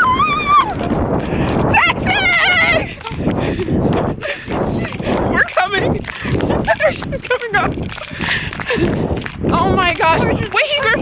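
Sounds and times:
women squealing and laughing: 0.0s - 0.9s.

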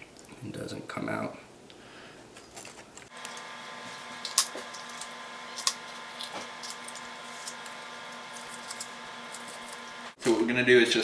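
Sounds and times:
steady hum: 3.0s - 10.2s.

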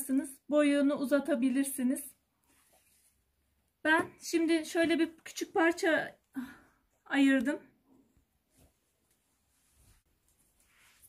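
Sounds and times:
fabric rustling: 2.3s - 3.5s, 8.2s - 11.0s.

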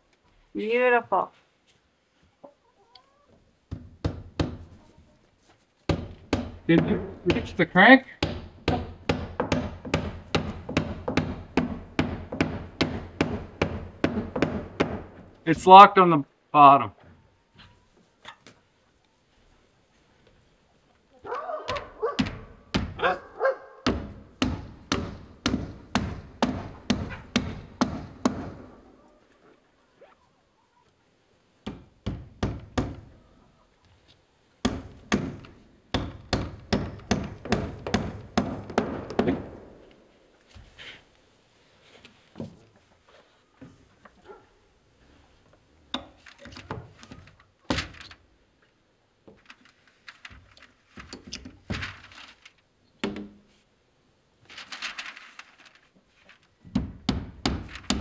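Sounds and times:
hammer driving nails into wood: 3.7s - 4.7s, 5.9s - 7.6s, 8.2s - 15.4s, 21.7s - 23.0s, 23.8s - 28.7s, 31.6s - 33.1s, 34.6s - 39.9s, 56.7s - 58.0s.

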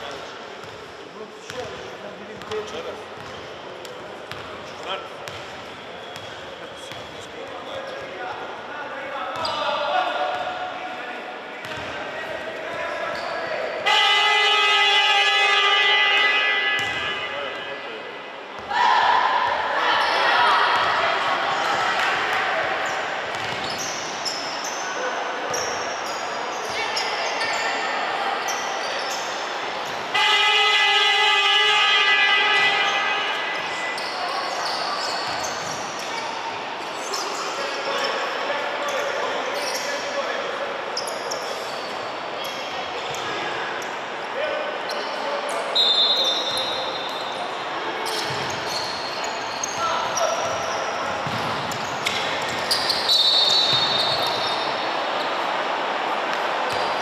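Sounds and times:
voices in echoing hall: 0.0s - 57.0s
buzzing game horn: 13.8s - 17.3s, 30.1s - 33.3s
basketballs bouncing on floor: 48.2s - 48.6s, 50.4s - 52.7s.

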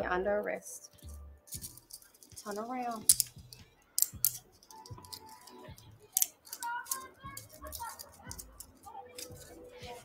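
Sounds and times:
handcuffs ratcheting shut: 1.0s - 2.4s, 3.0s - 9.5s.

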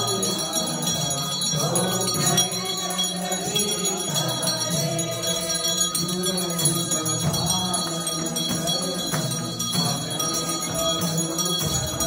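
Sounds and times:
group singing a hymn: 0.0s - 12.0s
small bells ringing: 0.0s - 12.0s.

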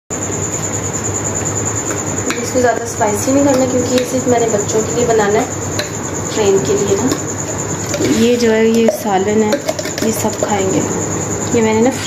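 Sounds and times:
mechanical hum and hiss: 0.1s - 12.0s
thin pulsing high whine: 0.1s - 12.0s.

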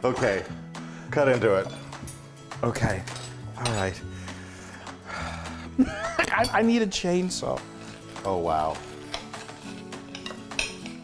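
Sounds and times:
cutlery scraping on plate: 7.7s - 11.0s.

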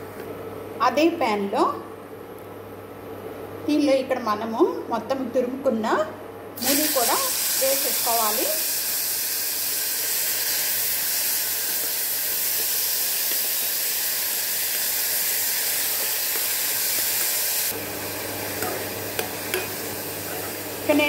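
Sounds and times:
food sizzling in hot oil: 6.6s - 21.0s.

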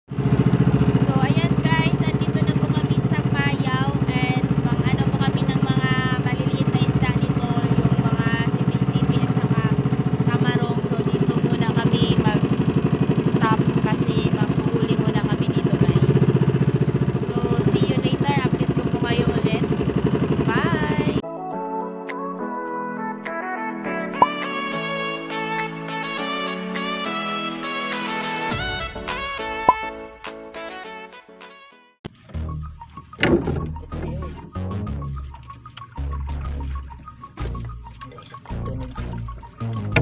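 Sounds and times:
boat motor running: 0.1s - 21.2s, 32.1s - 40.0s
music: 1.0s - 9.8s, 20.8s - 40.0s
voices: 1.0s - 12.5s, 13.2s - 16.4s, 17.2s - 19.7s, 20.4s - 21.2s, 36.8s - 40.0s.

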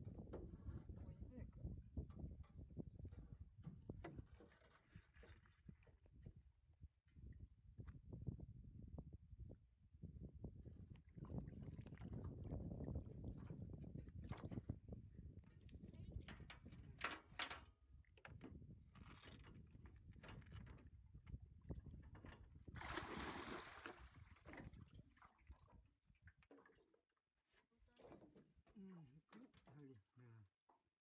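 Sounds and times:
water sloshing against boat: 0.0s - 6.4s, 10.9s - 30.8s
quiet voice: 0.7s - 1.8s, 27.6s - 30.6s.

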